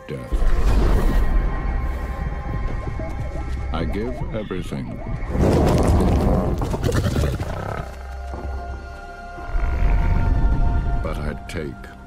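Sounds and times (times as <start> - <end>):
lions growling: 4.6 - 8.2.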